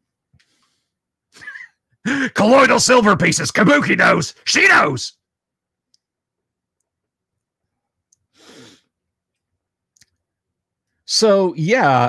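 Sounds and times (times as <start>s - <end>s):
man's voice: 2.1s - 5.2s, 11.1s - 12.0s.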